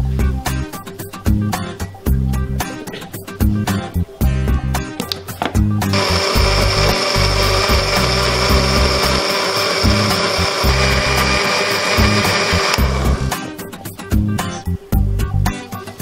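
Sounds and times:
electric blender whining: 5.9s - 13.4s.

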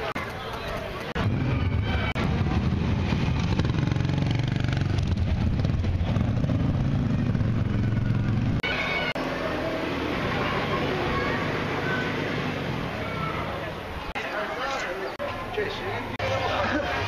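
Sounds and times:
voices: 0.0s - 2.7s, 7.7s - 17.0s.

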